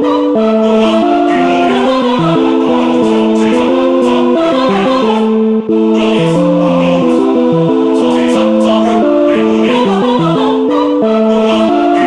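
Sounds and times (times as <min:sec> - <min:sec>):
choir-like vocal chords: 0:00.0 - 0:12.0.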